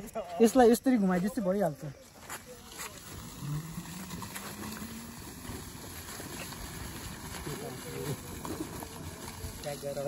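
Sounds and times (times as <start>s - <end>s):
tyres crunching on gravel: 2.0s - 10.0s
electric scooter motor hum: 3.0s - 10.0s.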